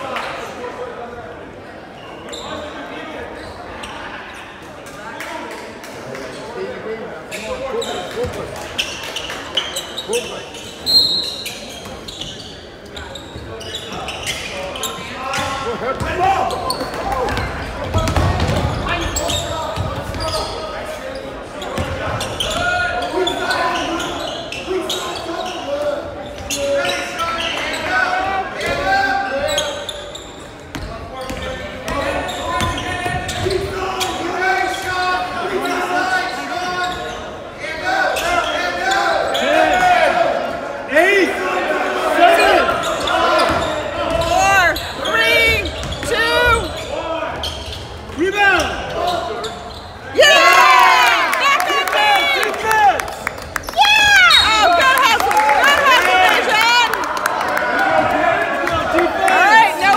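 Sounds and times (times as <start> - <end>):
voices echoing in gymnasium: 0.0 - 59.9.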